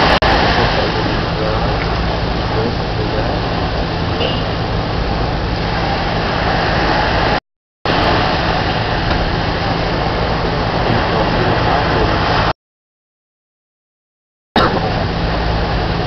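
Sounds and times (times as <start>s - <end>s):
loud steady noise: 0.0s - 12.5s, 14.6s - 16.0s
low hum: 0.0s - 12.5s, 14.6s - 16.0s.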